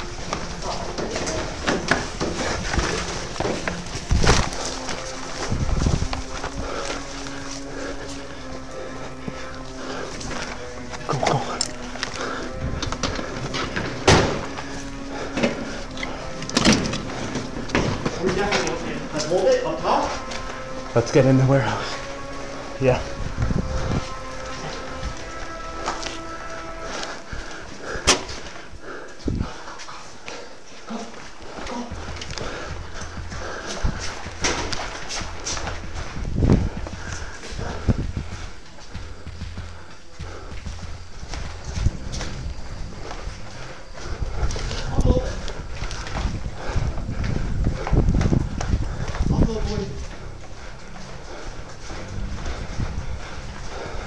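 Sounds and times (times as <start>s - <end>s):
background music: 0.0s - 54.0s
footsteps on a hard floor: 0.0s - 54.0s.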